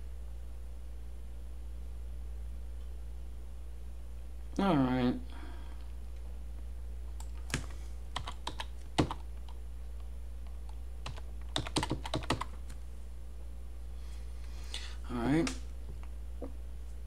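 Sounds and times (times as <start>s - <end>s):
steady low hum: 0.0s - 17.0s
keyboard typing: 7.1s - 9.6s, 10.6s - 12.8s.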